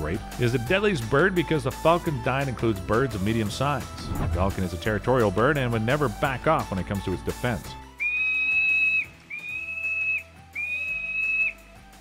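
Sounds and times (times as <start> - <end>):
soft background music: 0.0 - 12.0
high-pitched whistled tones: 8.0 - 11.6.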